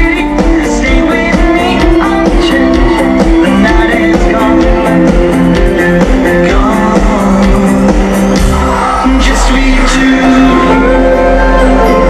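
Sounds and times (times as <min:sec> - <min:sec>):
man singing lead vocal: 0:00.0 - 0:12.0
pop-rock band playing: 0:00.0 - 0:12.0.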